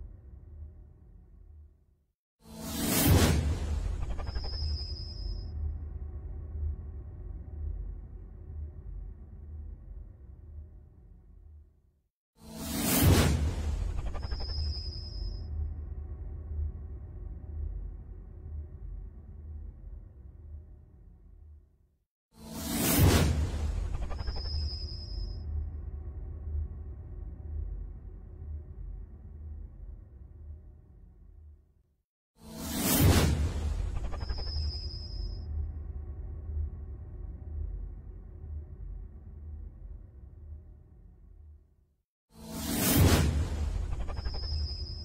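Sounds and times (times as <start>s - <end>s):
whoosh with deep low end: 42.7s - 45.0s.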